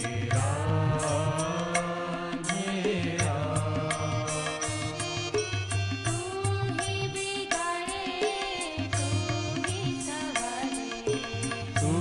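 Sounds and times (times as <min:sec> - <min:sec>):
harmonium: 0:00.0 - 0:12.0
tabla strokes: 0:00.0 - 0:12.0.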